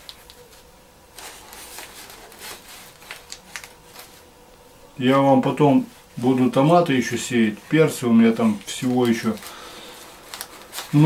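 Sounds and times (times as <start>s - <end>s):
plastic and soil rustling: 0.0s - 4.3s, 5.0s - 11.0s.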